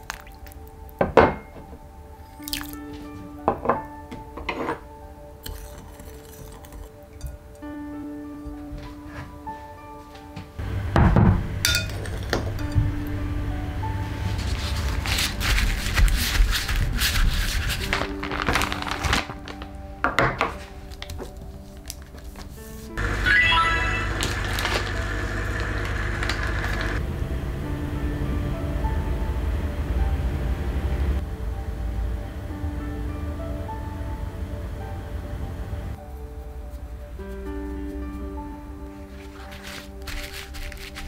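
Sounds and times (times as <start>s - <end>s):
soft splashes and drips in water: 0.0s - 1.0s, 2.4s - 2.9s
background music with held tones: 0.0s - 41.0s.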